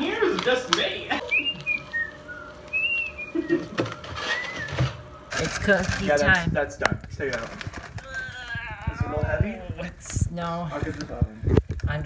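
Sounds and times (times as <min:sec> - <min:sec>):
person laughing: 0:01.1 - 0:01.7, 0:03.2 - 0:04.0
person whistling: 0:01.2 - 0:05.0.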